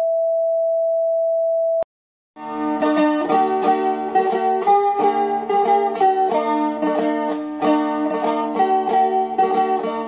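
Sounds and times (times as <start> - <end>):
steady test tone beep: 0.0 - 1.8.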